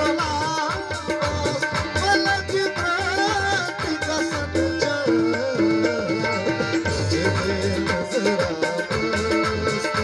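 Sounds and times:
harmonium and keyboard melody: 0.0 - 10.0
tabla drumming: 0.0 - 10.0.

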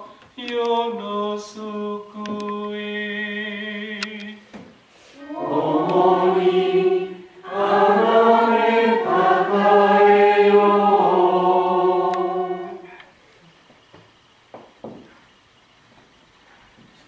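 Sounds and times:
congregation chanting in unison: 5.2 - 13.0.

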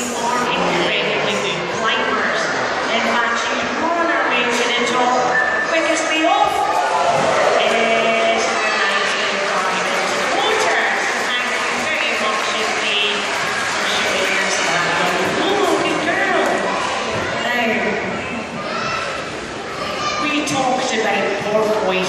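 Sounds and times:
audience chatter in hall: 0.0 - 22.0.

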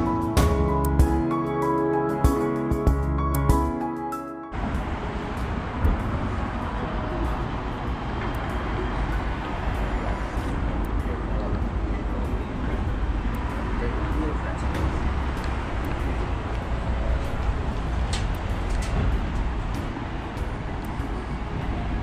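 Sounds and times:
road traffic rumble: 0.0 - 3.8, 4.5 - 22.0
background music: 0.0 - 22.0.

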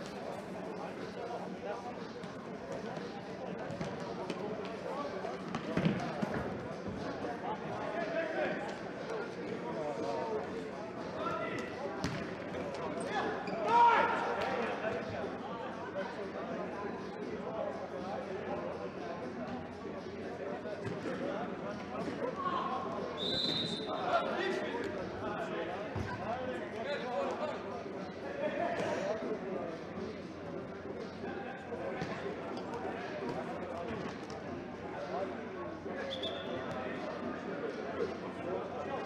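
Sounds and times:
ball kicks and bounces: 12.0 - 12.2
referee's whistle blast: 23.2 - 23.9, 36.1 - 36.6.

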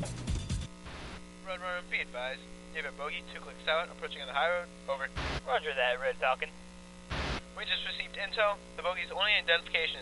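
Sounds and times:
electrical hum: 0.0 - 10.0
radio voice speaking: 1.4 - 10.0.

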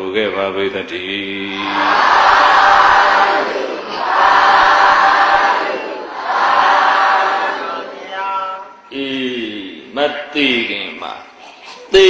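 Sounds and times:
congregation chanting in unison: 1.2 - 8.7.

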